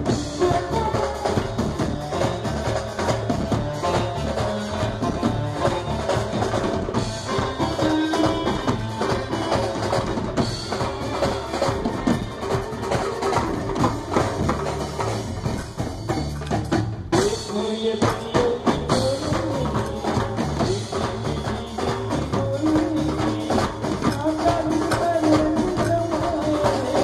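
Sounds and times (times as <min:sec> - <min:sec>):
pitched melody: 0:00.0 - 0:26.5
drums beating in dense rhythm: 0:00.0 - 0:27.0.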